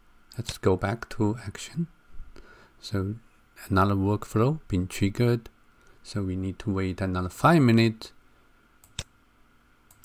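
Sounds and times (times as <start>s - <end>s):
computer mouse click: 8.8s - 9.1s.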